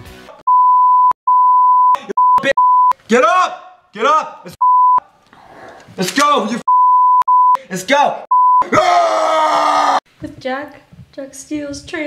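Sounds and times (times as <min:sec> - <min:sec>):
censor bleep: 0:00.5 - 0:03.0, 0:04.6 - 0:05.0, 0:06.7 - 0:07.6, 0:08.3 - 0:08.7.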